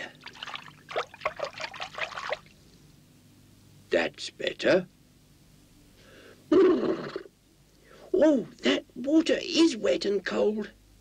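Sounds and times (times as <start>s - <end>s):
water splashing in a bucket: 0.0s - 2.5s.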